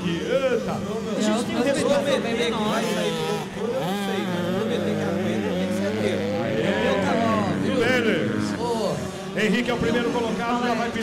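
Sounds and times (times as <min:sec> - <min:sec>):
motocross bike engine revving: 0:00.0 - 0:11.0.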